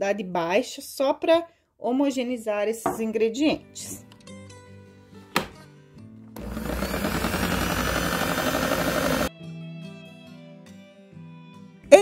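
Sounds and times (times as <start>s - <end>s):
soft background music: 2.9s - 6.3s
mixer click: 6.4s - 9.3s
stand mixer motor running: 6.4s - 9.3s.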